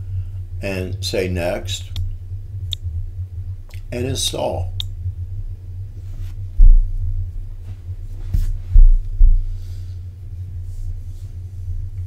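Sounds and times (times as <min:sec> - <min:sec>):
heavy low thumps: 0:00.0 - 0:12.0
low electrical hum: 0:00.0 - 0:12.0.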